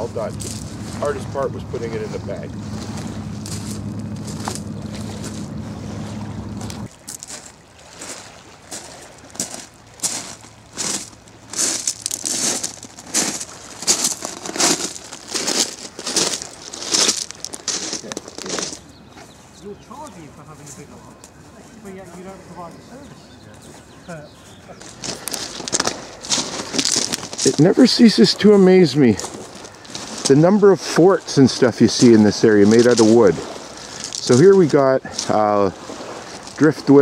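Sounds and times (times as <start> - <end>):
footsteps crunching on pebbles: 0.0 - 1.4, 2.0 - 5.6, 6.7 - 19.0, 23.8 - 37.0
steady low hum: 0.0 - 6.9.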